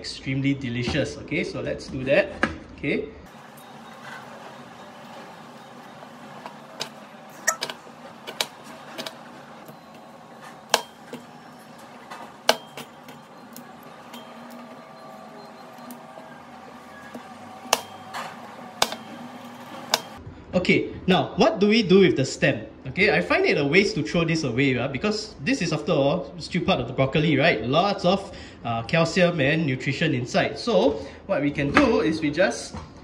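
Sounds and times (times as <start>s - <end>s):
faint background hum: 0.0s - 33.0s.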